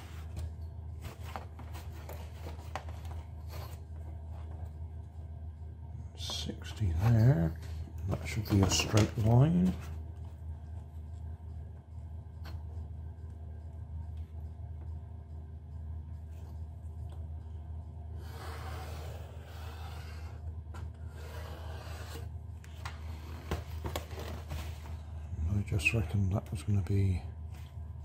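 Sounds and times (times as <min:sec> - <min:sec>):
steady low hum: 0:00.0 - 0:28.0
pen scratching along a ruler: 0:18.2 - 0:20.4, 0:21.1 - 0:22.3.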